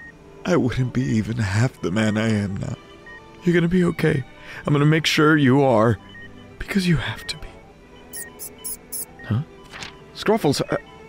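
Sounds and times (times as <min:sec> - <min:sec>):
small rodent squeaking: 0:08.2 - 0:09.1.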